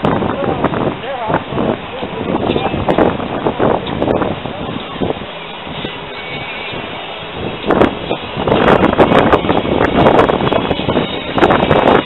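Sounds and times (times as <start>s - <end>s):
wind buffeting the microphone: 0.0s - 12.0s.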